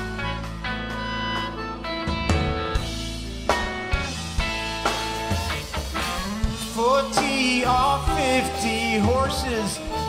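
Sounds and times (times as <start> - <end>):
blues rock band playing: 0.0 - 10.0
harmonica long notes: 0.0 - 10.0.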